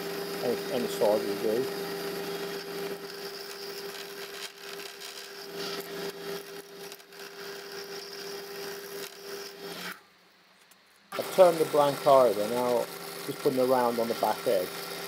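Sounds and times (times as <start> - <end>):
wood lathe humming: 0.0 - 10.0, 11.1 - 15.0
turning tool scraping wood: 0.4 - 10.0, 11.1 - 15.0.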